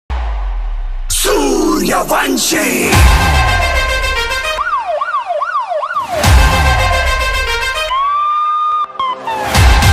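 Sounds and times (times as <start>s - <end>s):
background music with bass: 0.1s - 4.8s, 6.0s - 8.2s, 9.0s - 9.9s
wailing siren-like sound effect: 2.9s - 9.5s.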